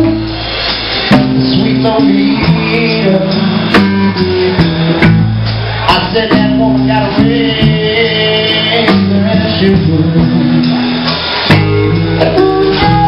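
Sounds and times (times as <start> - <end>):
blues band playing: 0.0 - 13.0
drum kit hits: 0.0 - 13.0
electric bass line: 0.0 - 13.0
amplified harmonica: 2.0 - 5.8, 10.7 - 13.0.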